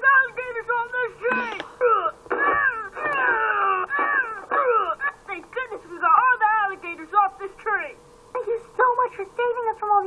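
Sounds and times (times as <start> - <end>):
cartoon character wailing: 1.2 - 5.2.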